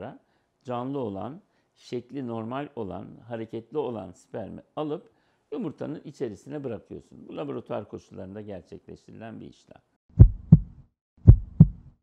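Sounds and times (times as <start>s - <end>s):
heartbeat: 10.2s - 11.9s.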